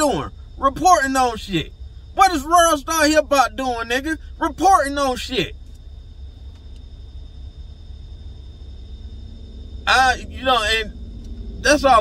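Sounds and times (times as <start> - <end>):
faint high-pitched tone: 0.0 - 12.0
low car cabin rumble: 0.0 - 12.0.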